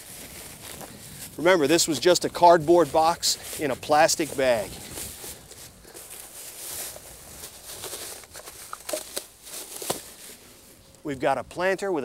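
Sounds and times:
plastic bag rustling: 0.0s - 10.9s.

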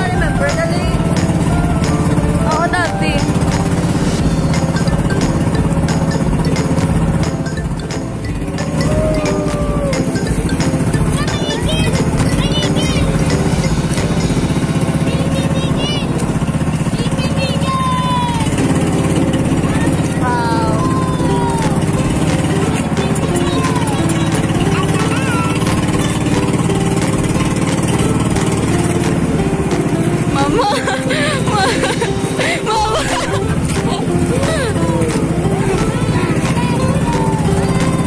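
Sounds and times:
boat engine droning: 0.0s - 38.0s
voices calling out: 0.0s - 38.0s.

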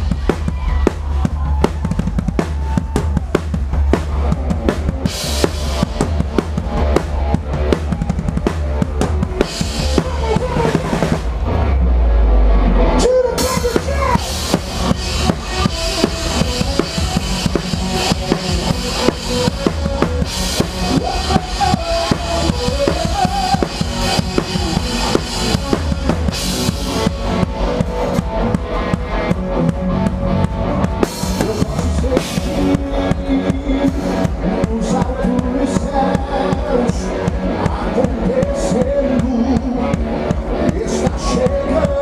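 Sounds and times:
band instruments playing: 0.0s - 42.0s
drum kit playing: 0.0s - 42.0s.

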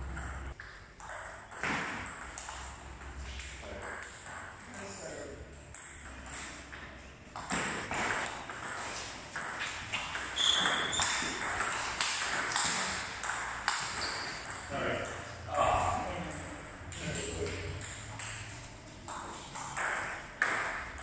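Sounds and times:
ping pong ball clicking off paddles: 0.1s - 15.5s, 16.2s - 21.0s
ball bouncing on table: 1.0s - 4.9s, 5.8s - 15.2s, 16.2s - 21.0s.

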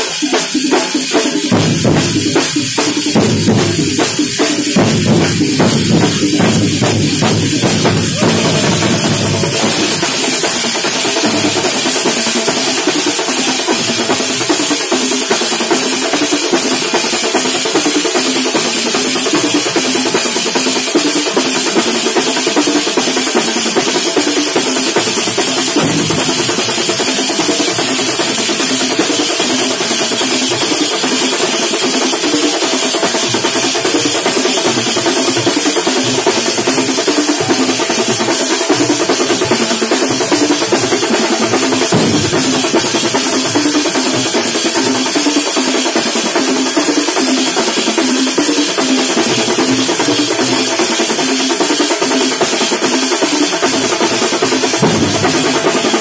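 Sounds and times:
many drums beating fast: 0.0s - 56.0s.

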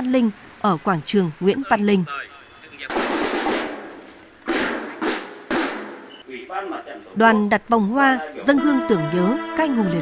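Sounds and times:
drum and cymbal strikes: 2.9s - 3.9s, 4.5s - 6.2s.

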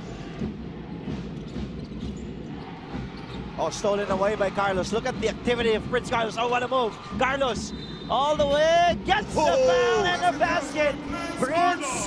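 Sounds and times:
crowd murmur in arena: 0.0s - 12.0s.

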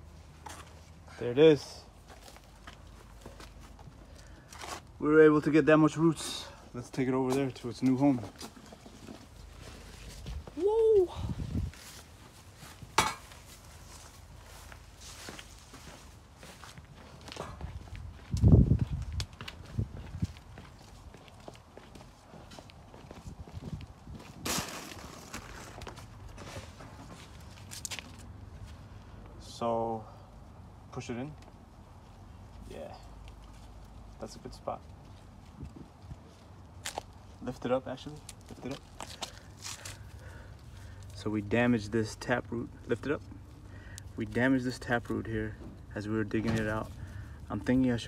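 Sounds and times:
crunching and rustling of roots: 0.0s - 29.6s, 31.5s - 48.0s
footsteps on concrete: 11.7s - 24.5s.

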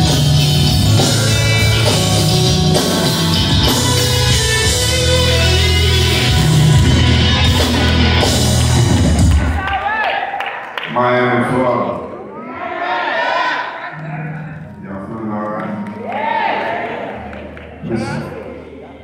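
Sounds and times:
live gospel band playing: 0.0s - 9.7s, 13.7s - 18.9s
people cheering: 6.8s - 10.9s, 12.2s - 19.0s.

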